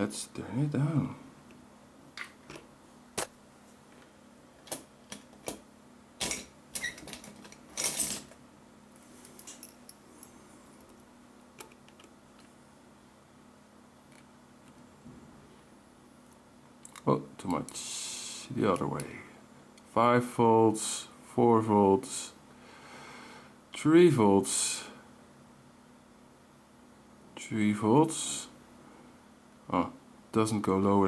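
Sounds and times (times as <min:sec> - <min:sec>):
faint low hum: 0:00.0 - 0:31.0.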